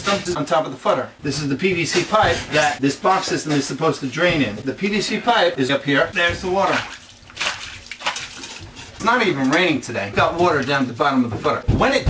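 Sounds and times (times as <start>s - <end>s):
hand splashing in water: 6.6s - 8.6s.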